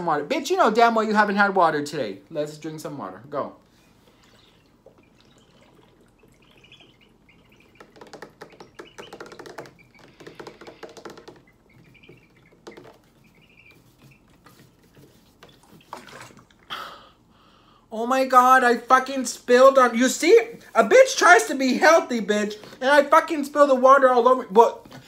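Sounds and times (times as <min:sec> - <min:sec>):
water sloshing in a jug: 0:03.9 - 0:16.7
person gulping water: 0:04.2 - 0:06.5, 0:15.9 - 0:17.2.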